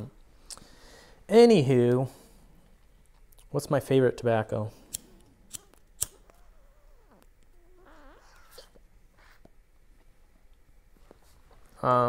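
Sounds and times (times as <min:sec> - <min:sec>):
tobacco pipe click: 0:04.9 - 0:06.2
faint wavering squeaks: 0:06.2 - 0:09.4.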